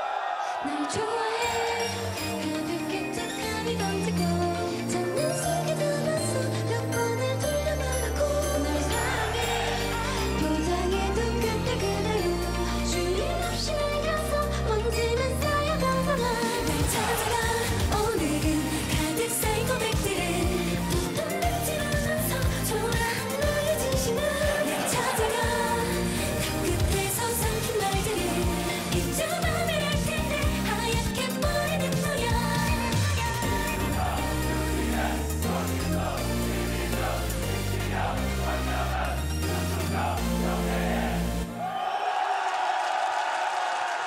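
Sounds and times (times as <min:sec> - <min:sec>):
audience cheering and screaming: 0:00.0 - 0:02.2, 0:16.5 - 0:18.0, 0:24.3 - 0:26.1, 0:39.8 - 0:44.0
women singing pop song: 0:00.0 - 0:38.0.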